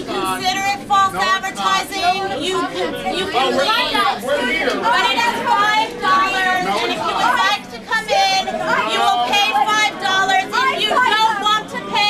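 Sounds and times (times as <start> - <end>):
people arguing: 0.0 - 12.0.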